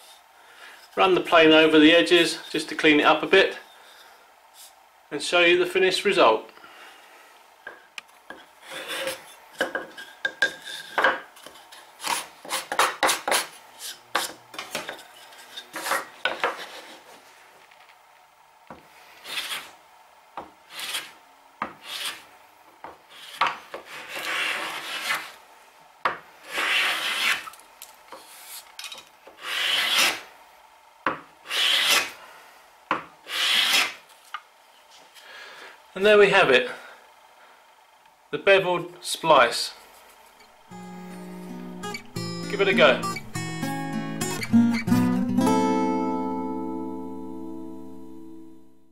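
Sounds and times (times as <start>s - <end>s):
hand plane strokes on wood: 20.7s - 21.1s, 21.7s - 22.2s, 23.1s - 25.4s, 26.5s - 27.5s, 29.4s - 30.2s, 31.5s - 32.1s, 33.3s - 33.9s.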